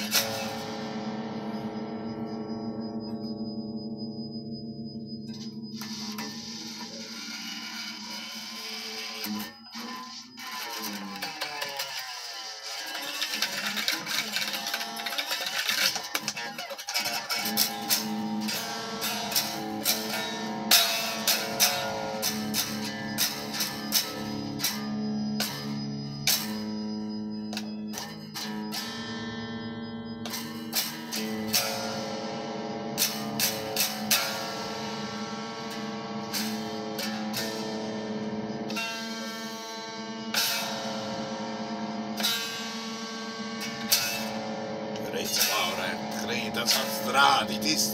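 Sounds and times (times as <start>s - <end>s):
electric guitar metal riff: 0.0s - 47.9s.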